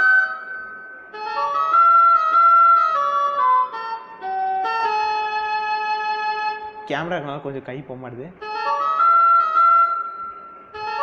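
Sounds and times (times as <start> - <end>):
digital keyboard melody: 0.0 - 11.0.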